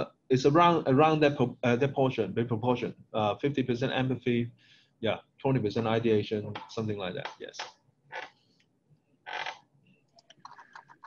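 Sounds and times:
typing on computer keyboard: 10.2s - 11.0s.

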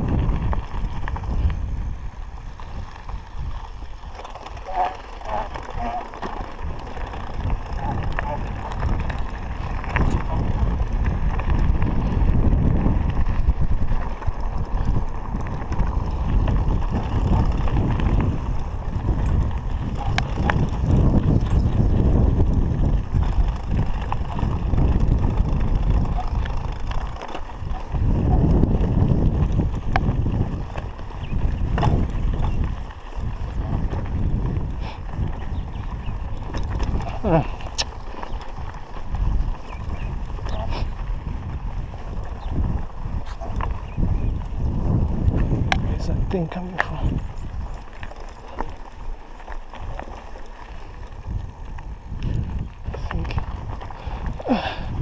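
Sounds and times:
bike rattling: 0.0s - 55.0s
bike tyres rumbling on gravel: 0.0s - 55.0s
wind buffeting microphone: 0.0s - 55.0s.

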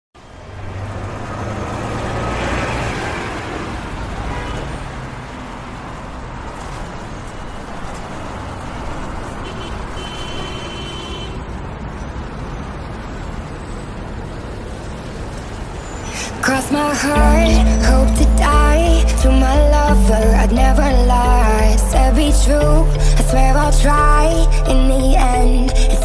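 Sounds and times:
road traffic rumble: 0.2s - 26.0s.

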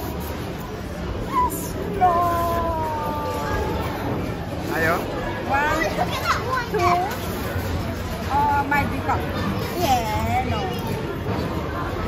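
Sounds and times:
high-pitched voices chattering: 0.0s - 12.0s
low background noise: 0.0s - 12.0s.

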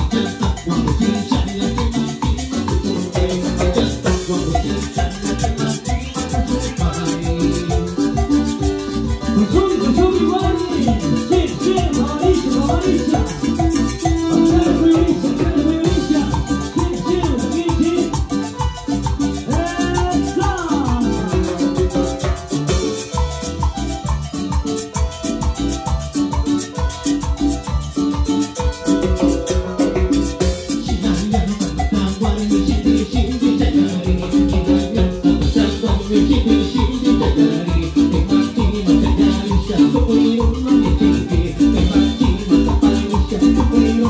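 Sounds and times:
electronic keyboard melody: 0.0s - 44.0s
latin dance band music: 0.0s - 44.0s.

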